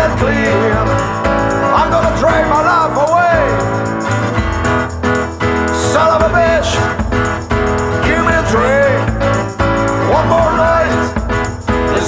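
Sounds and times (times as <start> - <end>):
blues-rock band instrumental: 0.0 - 12.0.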